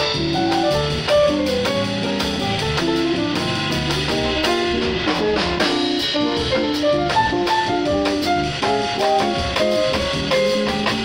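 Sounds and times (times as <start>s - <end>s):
drum kit: 0.0s - 11.0s
keyboard playing jazz: 0.0s - 11.0s.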